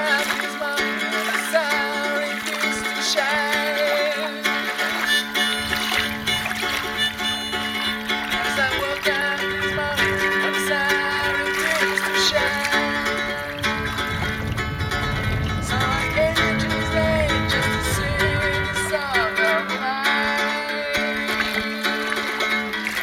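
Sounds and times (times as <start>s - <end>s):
strummed guitalele: 0.0s - 23.0s
harmonica playing blues: 3.6s - 14.6s.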